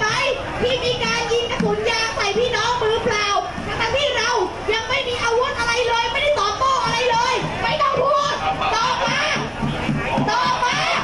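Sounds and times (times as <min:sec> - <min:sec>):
woman speaking through loudspeakers: 0:00.0 - 0:09.5, 0:10.2 - 0:11.0.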